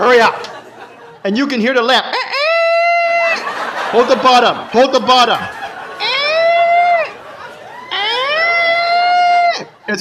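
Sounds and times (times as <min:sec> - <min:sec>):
man imitating high squeal: 0:02.0 - 0:03.5, 0:05.9 - 0:07.2, 0:07.8 - 0:09.9.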